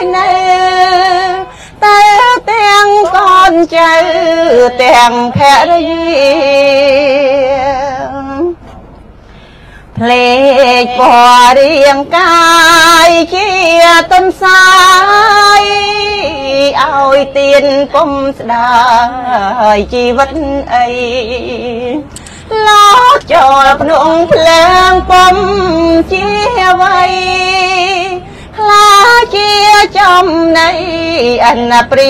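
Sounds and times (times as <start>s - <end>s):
woman chanting: 0.0s - 8.6s, 10.0s - 32.0s.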